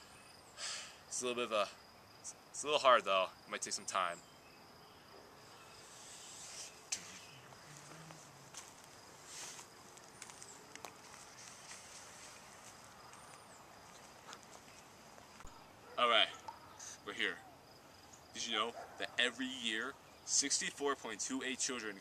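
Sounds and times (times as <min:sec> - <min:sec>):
insect trill: 0:00.0 - 0:22.0
soft rustles: 0:06.2 - 0:15.5.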